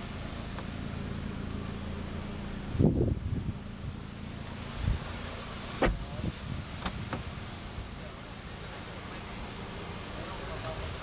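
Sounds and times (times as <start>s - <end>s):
car door slamming: 4.4s - 7.5s.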